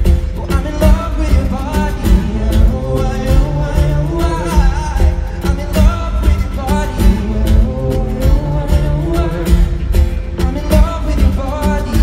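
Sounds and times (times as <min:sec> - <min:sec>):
acoustic guitar: 0:00.0 - 0:12.0
person singing: 0:00.0 - 0:12.0.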